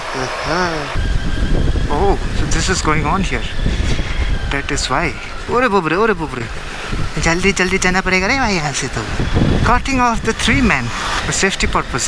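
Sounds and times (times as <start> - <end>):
drawn-out voice: 0.0 - 1.0
motorcycle engine rumble: 0.0 - 12.0
wind buffeting microphone: 0.0 - 12.0.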